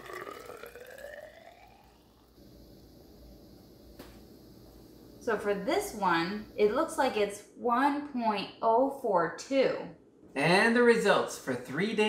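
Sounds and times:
fizzy liquid pouring into cylinder: 0.0s - 2.6s.

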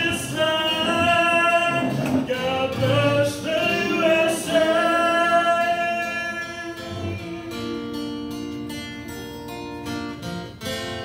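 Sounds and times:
man singing into a microphone: 0.0s - 8.2s
acoustic guitar: 0.0s - 11.0s.

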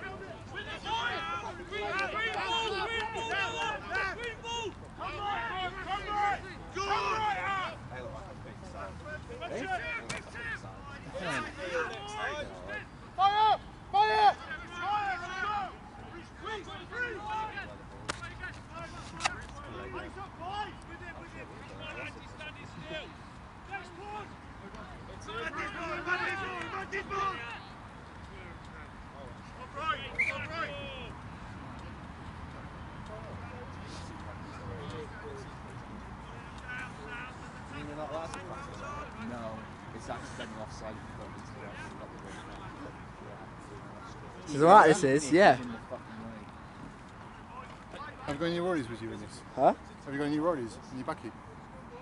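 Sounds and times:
players shouting calls: 0.0s - 52.0s.

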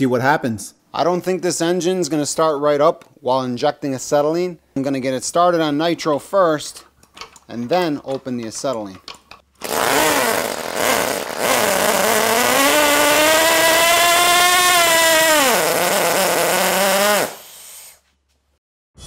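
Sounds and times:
pull starter: 9.6s - 17.5s
small rotary engine revving: 9.6s - 18.0s.

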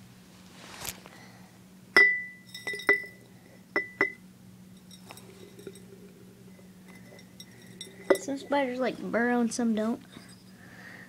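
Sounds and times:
glass jar clinking: 2.0s - 8.7s, 10.0s - 10.6s.

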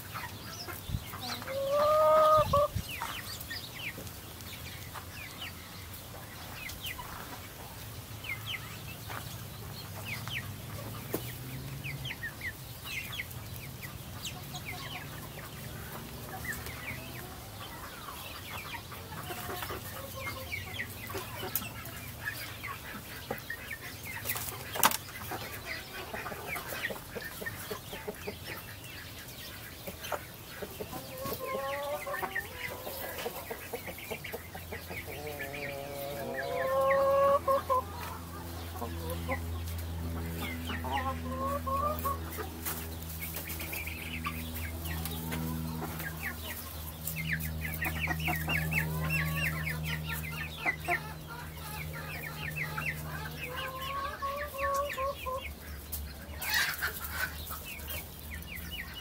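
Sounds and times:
drawn-out chicken call: 0.0s - 4.1s, 10.0s - 59.0s
chickens clucking and chirping: 0.0s - 59.0s.

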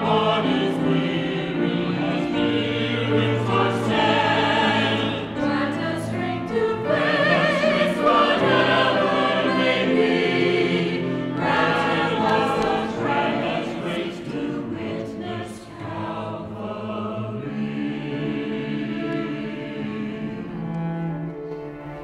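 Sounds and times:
choir singing: 0.0s - 21.3s
cello: 0.0s - 22.0s
piano: 0.0s - 22.0s.

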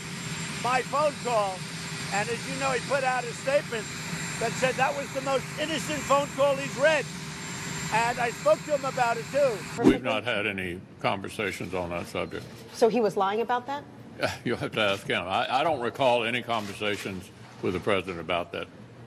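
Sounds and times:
helicopter turbine whine: 0.0s - 19.0s
man talking: 0.6s - 3.8s, 4.4s - 7.0s, 7.9s - 12.5s, 14.2s - 18.7s.

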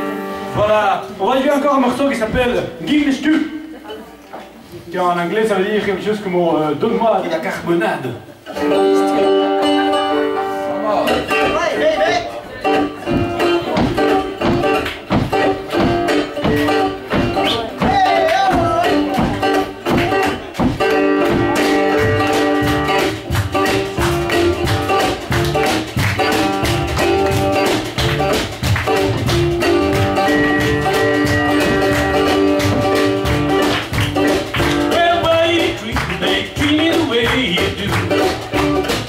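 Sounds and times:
plucked guitar: 0.0s - 1.2s, 8.4s - 39.0s
upright double bass: 8.5s - 39.0s
hand percussion: 12.7s - 39.0s.

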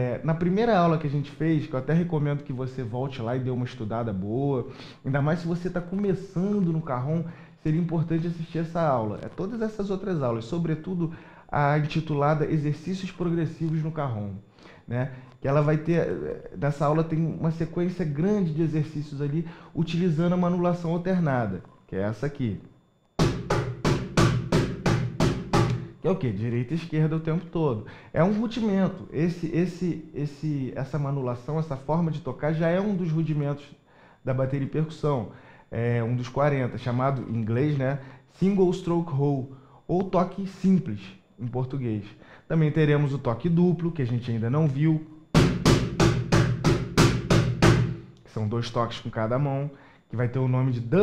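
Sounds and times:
cajon struck with bare hands: 23.2s - 25.9s, 45.4s - 48.1s.

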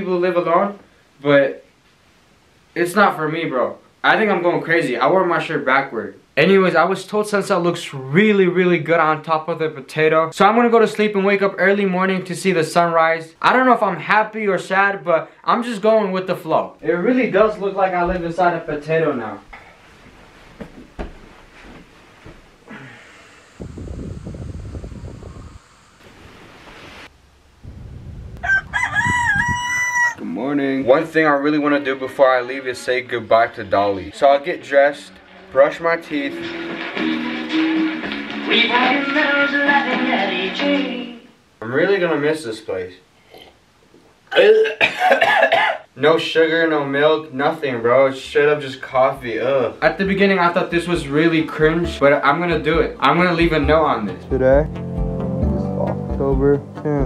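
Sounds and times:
bedding rustling: 17.5s - 22.7s
low rumbling noise: 22.6s - 29.5s
rooster crowing: 28.4s - 30.3s
young man's disgusted reaction: 44.3s - 45.7s.

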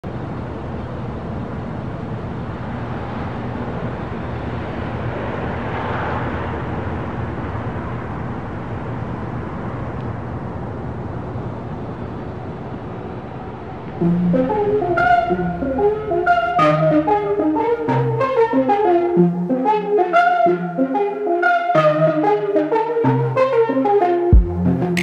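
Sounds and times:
low rumbling road noise: 0.0s - 18.2s.

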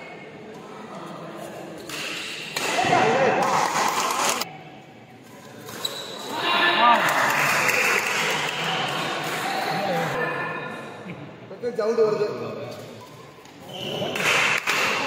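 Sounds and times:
spectators shouting and cheering: 6.3s - 10.2s.

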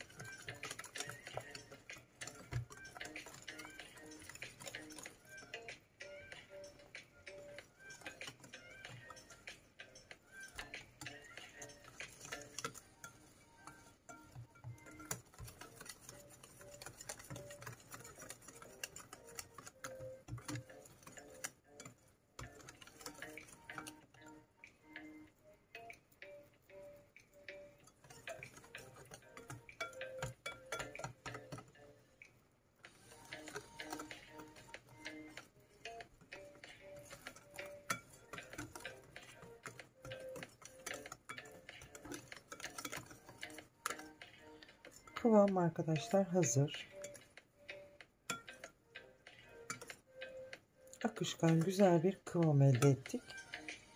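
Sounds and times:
soft background music: 0.0s - 53.9s
whisk clicking in ceramic bowl: 0.0s - 53.9s.

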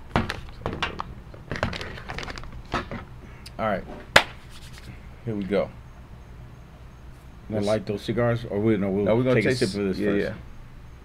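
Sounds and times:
coffee bags crinkling: 1.4s - 3.0s.

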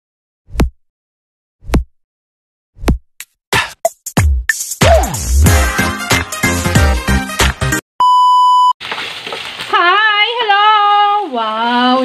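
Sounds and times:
electronic music with drum-machine beat: 3.6s - 7.8s
electronic beep: 8.0s - 8.8s.

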